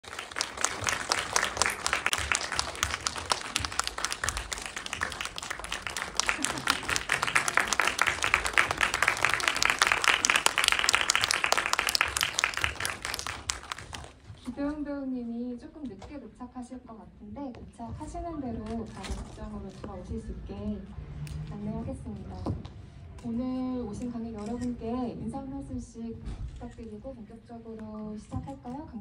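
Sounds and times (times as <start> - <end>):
audience applause: 0.0 - 14.2.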